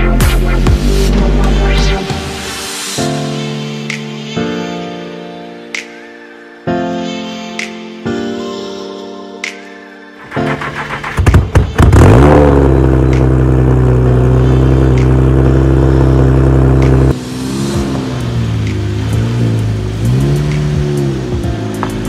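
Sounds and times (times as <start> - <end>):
car engine revving and idling: 10.5 - 22.0.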